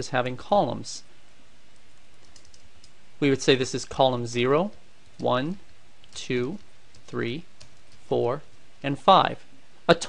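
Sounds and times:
computer keyboard keystrokes: 1.8 - 3.0, 6.6 - 8.0.

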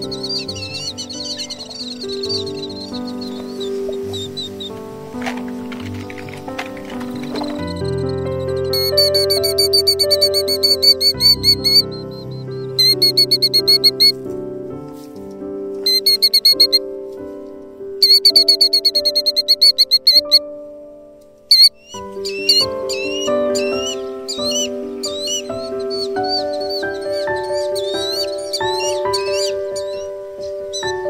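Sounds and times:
bird high trilled calls: 0.0 - 14.2, 15.8 - 16.8, 18.0 - 20.4, 21.5 - 31.0
background music of held notes: 0.0 - 31.0.

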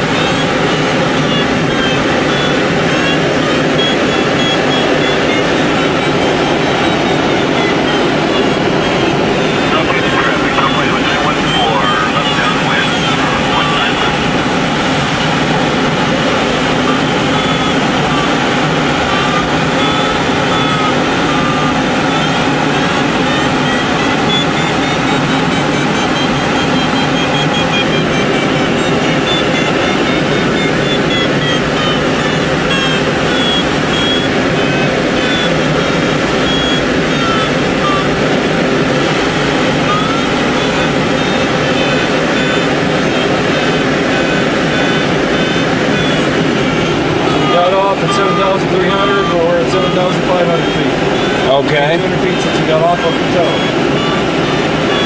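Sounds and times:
variometer beeping: 0.0 - 55.0.

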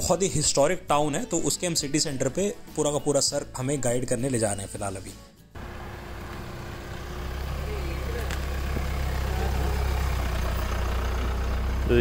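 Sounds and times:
car engine idling: 5.6 - 12.0.

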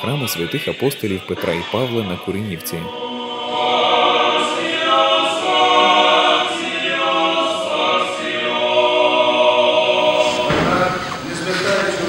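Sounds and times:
choir singing a cappella: 0.0 - 12.0.

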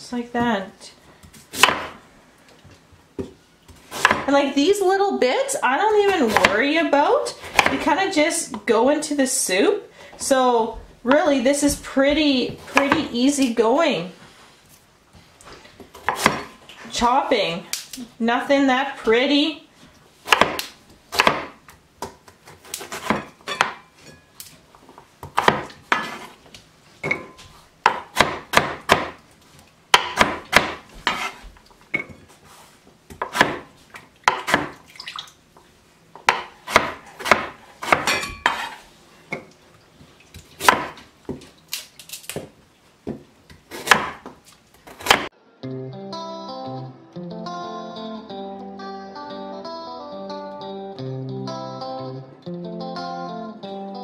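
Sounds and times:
knife chopping on wooden board: 1.5 - 2.0, 3.9 - 4.3, 7.4 - 7.8, 15.9 - 16.5, 20.3 - 23.8, 25.2 - 26.3, 27.1 - 29.2, 29.9 - 31.5, 33.1 - 33.7, 34.3 - 34.8, 36.2 - 38.8, 40.6 - 41.4, 43.1 - 45.3
plucked guitar music: 45.4 - 54.0.

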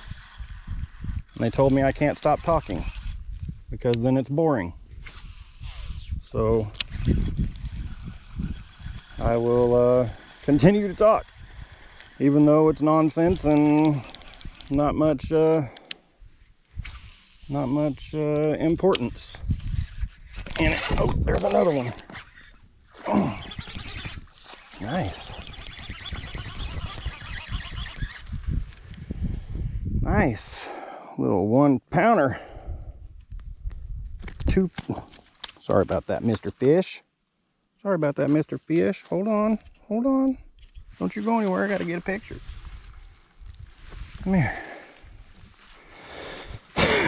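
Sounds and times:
fishing reel being cranked: 0.0 - 3.3, 5.0 - 16.0, 16.7 - 29.0
wind buffeting microphone: 0.0 - 3.9, 4.8 - 15.5, 16.2 - 30.7, 32.4 - 35.0.

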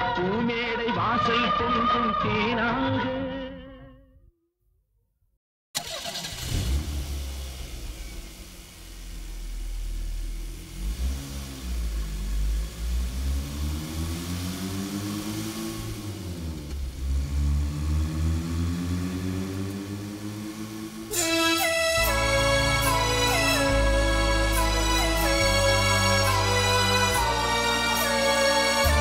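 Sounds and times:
vehicle engine revving: 5.8 - 29.0.

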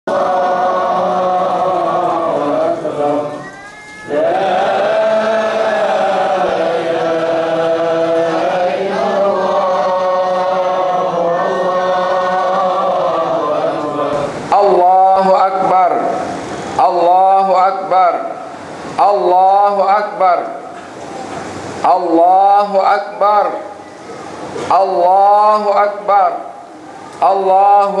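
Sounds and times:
vocal chanting in held notes: 0.0 - 20.8, 21.8 - 23.8, 24.6 - 28.0.

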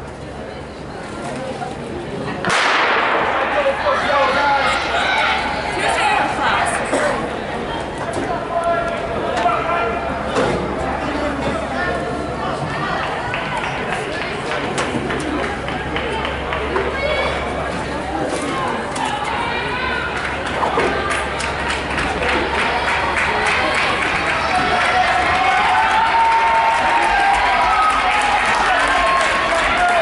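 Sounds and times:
crowd talking in echoing hall: 0.0 - 30.0
murmur of voices: 0.0 - 30.0.

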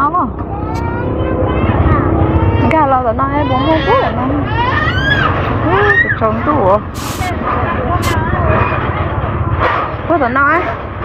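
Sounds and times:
people talking: 0.0 - 4.6, 5.6 - 10.8
short hissing bursts: 6.9 - 7.3.

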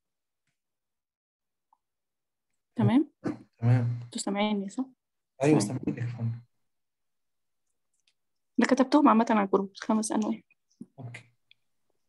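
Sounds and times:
man speaking: 2.8 - 4.1, 5.4 - 6.5.

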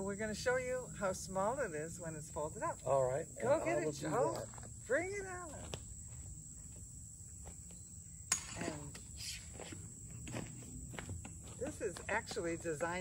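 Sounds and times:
crickets chirping: 0.0 - 13.0
footsteps on dirt: 4.1 - 8.0, 8.9 - 13.0.

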